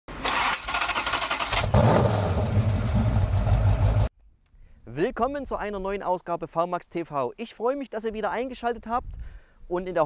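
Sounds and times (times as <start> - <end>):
car engine starting and running: 0.1 - 4.1.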